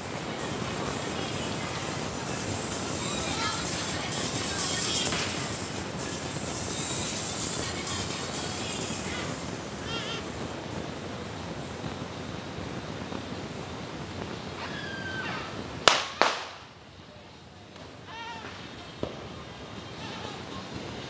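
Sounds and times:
firecracker bangs: 0.0s - 17.0s, 17.7s - 21.0s
street noise: 0.0s - 21.0s.

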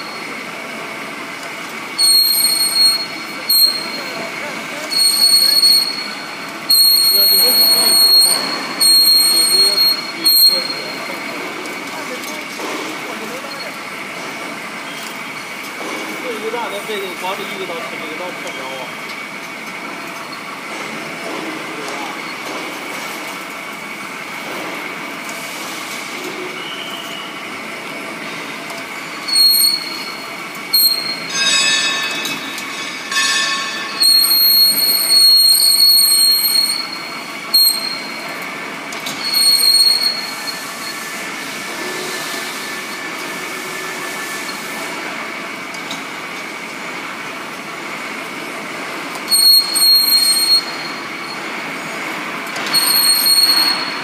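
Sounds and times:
pipe cutting machine droning: 0.0s - 13.6s, 27.5s - 45.3s
cutting tool squealing on metal: 2.0s - 4.2s, 4.8s - 11.2s, 29.2s - 38.2s, 39.1s - 41.1s, 49.3s - 51.4s, 52.6s - 54.0s.

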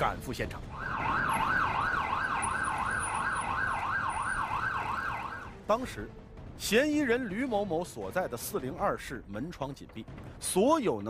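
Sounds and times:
police siren yelping: 0.7s - 5.5s.

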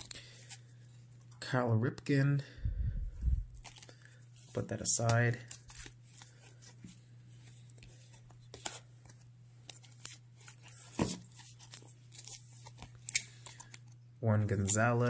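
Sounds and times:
low steady hum: 0.0s - 15.0s
cards in plastic sleeves rustling: 3.2s - 15.0s.

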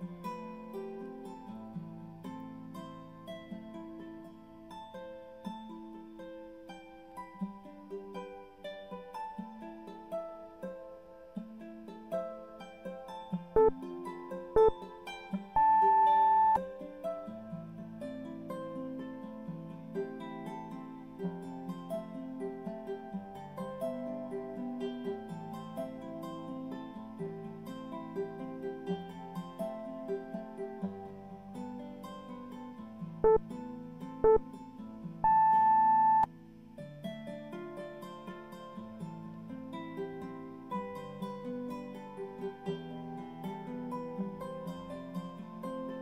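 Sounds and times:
plucked guitar music: 0.0s - 46.0s
electronic timer beep: 15.6s - 16.6s, 34.2s - 34.4s, 35.2s - 36.3s.

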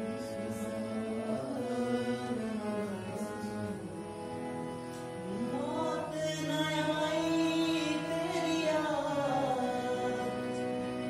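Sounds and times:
man singing unaccompanied: 0.0s - 4.2s, 5.2s - 11.0s.

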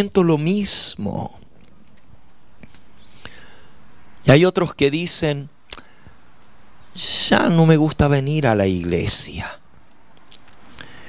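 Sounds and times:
background hiss: 0.0s - 11.0s
soft intake of breath: 3.1s - 3.9s, 10.7s - 11.0s.

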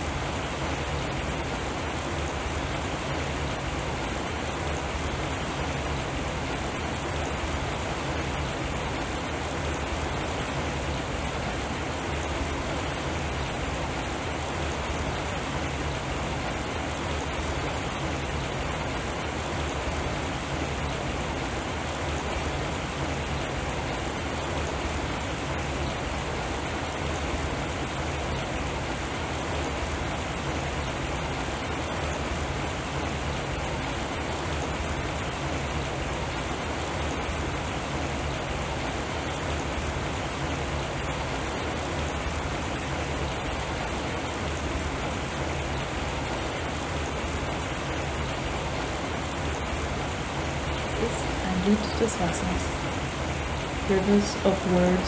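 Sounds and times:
low steady hum: 0.0s - 55.0s
rain-like water noise: 0.0s - 55.0s.

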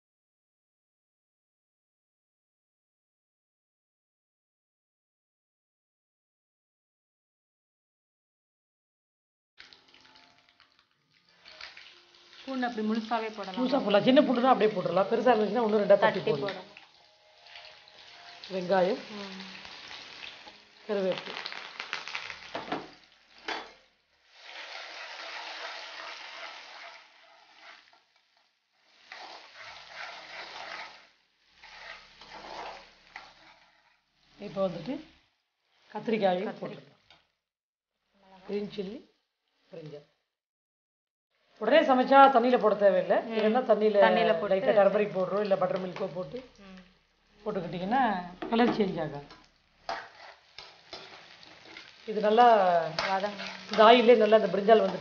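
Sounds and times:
spatula stirring in pan: 9.6s - 20.8s, 21.4s - 36.0s, 48.4s - 55.0s
onions sizzling in hot oil: 9.6s - 37.4s, 38.0s - 40.0s, 41.4s - 55.0s.

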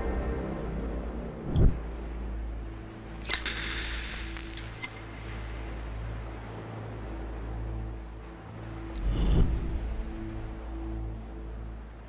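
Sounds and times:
background music drone: 0.0s - 12.0s
sharp hits: 3.2s - 5.6s.

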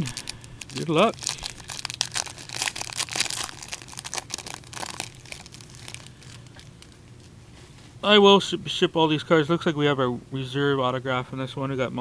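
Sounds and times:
wrapper tearing and crinkling: 0.0s - 7.3s.

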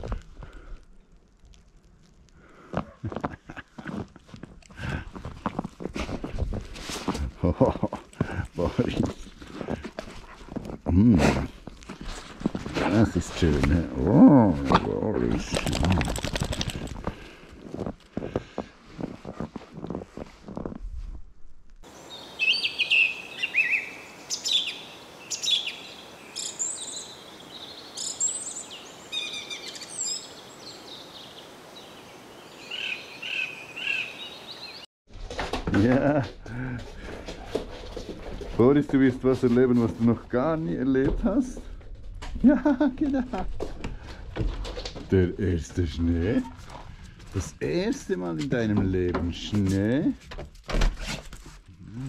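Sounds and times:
dog paws crunching snow: 2.8s - 21.3s, 37.0s - 41.5s
birds singing: 21.9s - 34.9s.

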